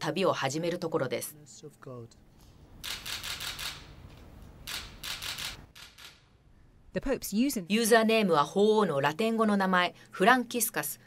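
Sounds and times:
camera shutters clicking: 2.8s - 6.3s.

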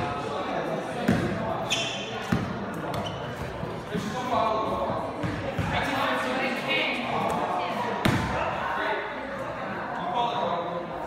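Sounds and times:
basketball bouncing on gym floor: 1.1s - 1.4s, 2.3s - 4.1s, 5.2s - 5.8s.

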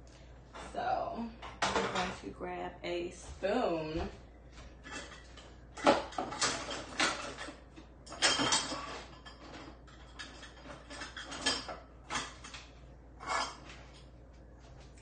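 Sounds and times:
cutlery and dishes clattering: 1.4s - 2.2s, 4.8s - 14.1s.

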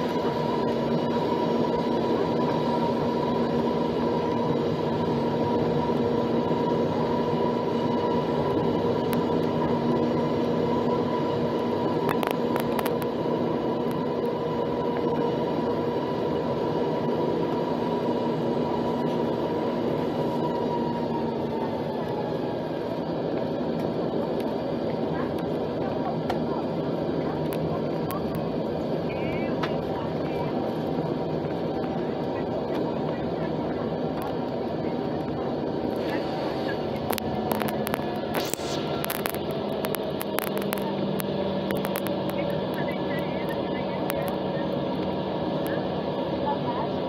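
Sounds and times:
jet engines humming: 0.0s - 47.0s.

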